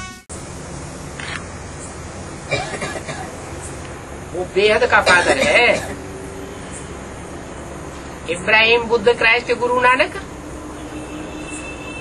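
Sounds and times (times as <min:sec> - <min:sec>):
faint constant hum: 0:00.0 - 0:10.8.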